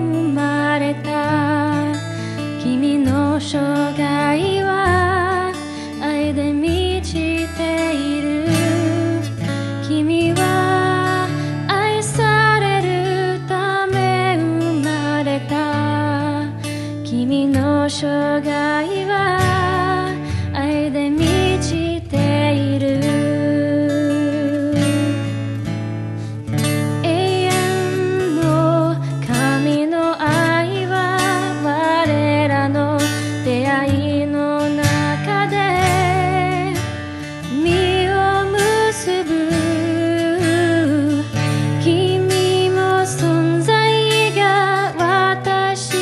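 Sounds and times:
woman singing a hymn: 0:00.0 - 0:02.0, 0:02.6 - 0:25.1, 0:27.0 - 0:36.8, 0:37.5 - 0:46.0.

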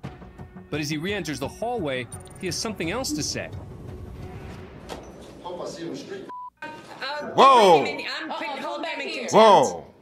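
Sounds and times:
man shouting: 0:09.3 - 0:09.8.

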